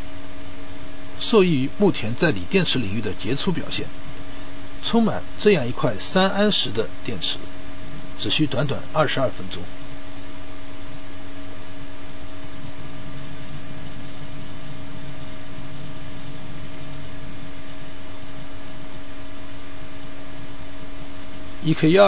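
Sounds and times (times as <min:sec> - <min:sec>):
low hum: 0:00.0 - 0:21.6
steady hiss: 0:00.0 - 0:22.0.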